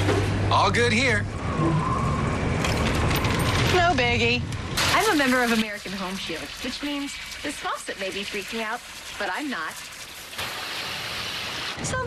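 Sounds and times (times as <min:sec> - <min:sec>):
woman speaking: 0:03.7 - 0:09.8
water spraying from faucet: 0:04.8 - 0:11.8.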